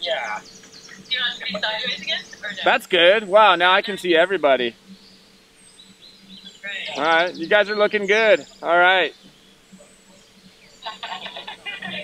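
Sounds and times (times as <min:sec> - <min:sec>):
voices through phone speaker: 0:00.0 - 0:04.7, 0:06.5 - 0:09.1, 0:10.8 - 0:12.0.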